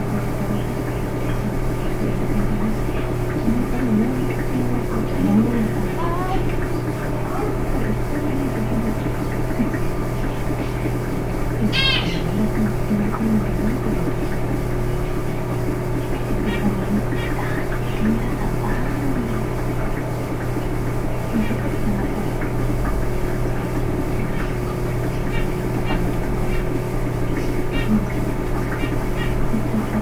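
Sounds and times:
faint muffled voices: 0.0 - 30.0
low electrical hum: 0.0 - 30.0.

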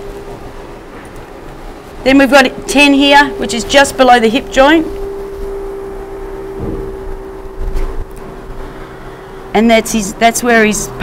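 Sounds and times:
steady even hum: 0.0 - 11.0
low rumble: 2.4 - 9.6.

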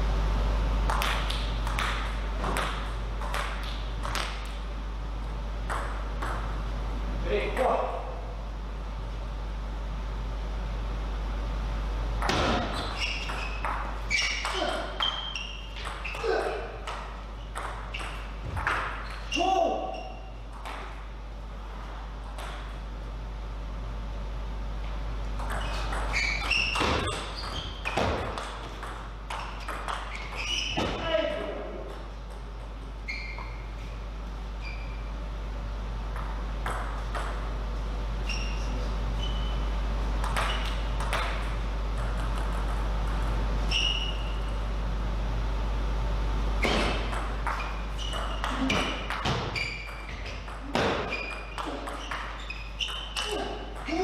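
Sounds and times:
steady low hum: 0.0 - 54.0
table tennis ball pinging: 0.9 - 4.6, 5.6 - 6.6, 12.2 - 19.2, 19.9 - 21.0, 22.2 - 22.8, 25.4 - 30.9, 36.1 - 37.5, 40.2 - 44.4, 46.6 - 54.0.

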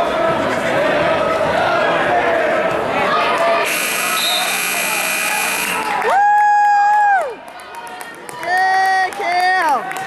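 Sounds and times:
buzzer: 3.7 - 6.0.

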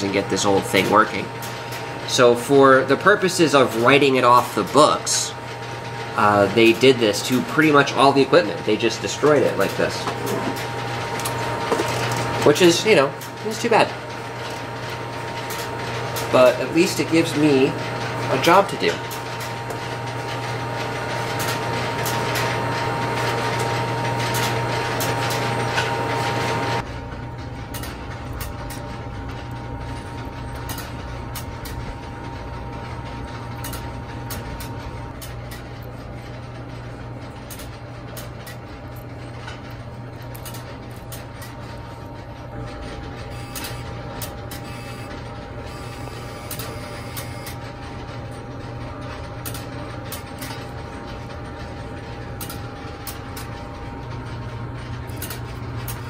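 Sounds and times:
switching equipment hum: 0.0 - 56.0
small clicks: 43.4 - 45.0.

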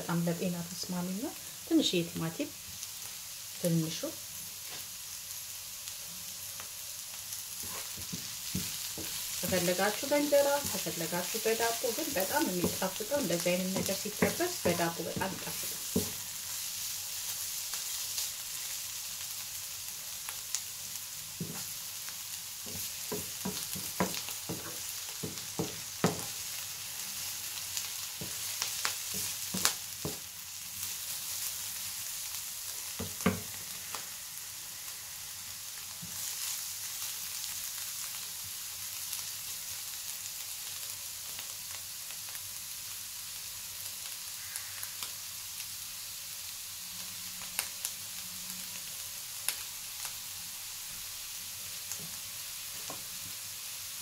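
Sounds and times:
vegetables sizzling in a frying pan: 0.0 - 54.0
wooden spoon tapping a pan: 8.0 - 16.2, 22.7 - 26.4, 29.1 - 30.2, 33.0 - 33.5.

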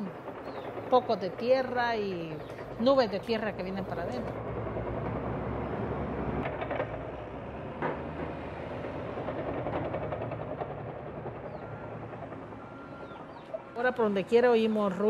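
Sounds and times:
heavy diesel machinery rumbling: 0.0 - 15.0.

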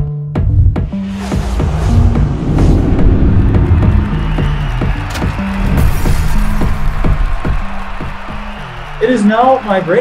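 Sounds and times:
low bass line: 0.1 - 7.9
drum hits: 0.4 - 8.6.

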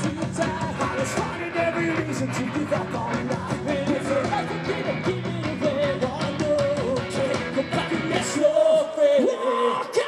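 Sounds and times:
punk rock band playing: 0.0 - 9.3
man singing: 0.0 - 10.0.

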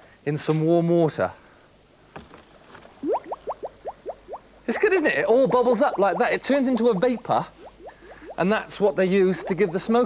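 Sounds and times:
dry ice bubbling in water: 3.0 - 10.0.

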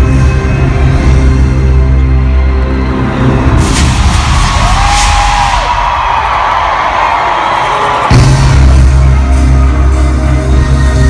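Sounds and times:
rushing build-up noise: 3.4 - 8.7
crowd cheering: 3.6 - 9.9.

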